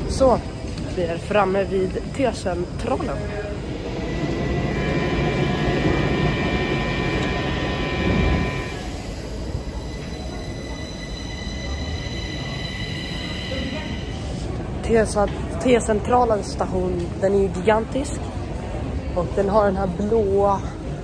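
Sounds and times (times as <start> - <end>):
metro train rumble: 0.0 - 17.2
thin high tones: 2.8 - 15.0.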